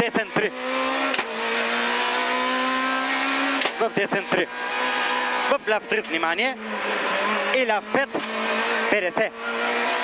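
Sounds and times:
car engine at high revs: 0:00.0 - 0:10.0.

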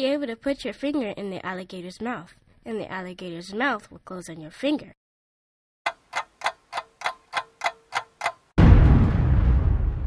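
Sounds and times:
clock ticking: 0:05.9 - 0:08.5
loud crash: 0:08.6 - 0:10.0.

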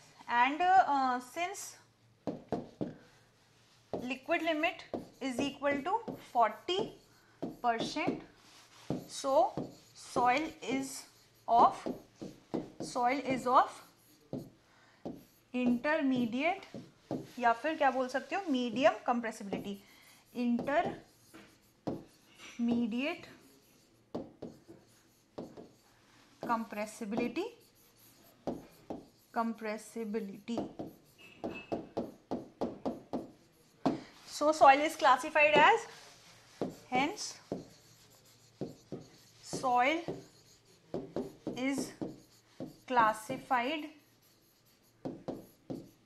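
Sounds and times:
pen scratching on whiteboard screen: 0:04.0 - 0:46.0.

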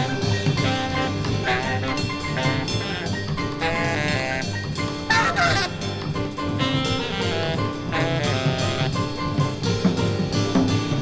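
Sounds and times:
jazz quartet playing: 0:00.0 - 0:11.0
saxophone wavering cry: 0:00.6 - 0:06.0, 0:06.6 - 0:09.0.

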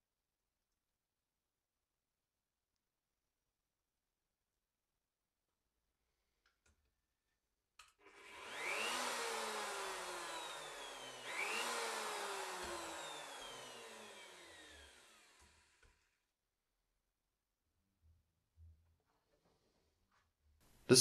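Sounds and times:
router motor whine: 0:08.0 - 0:16.2.

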